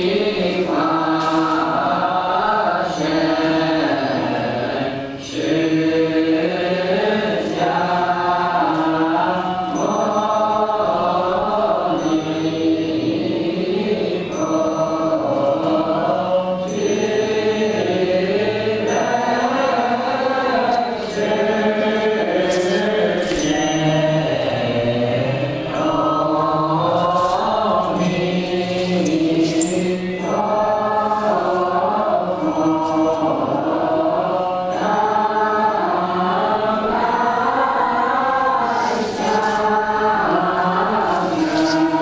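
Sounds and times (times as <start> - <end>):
chanting voices: 0.0 - 42.0.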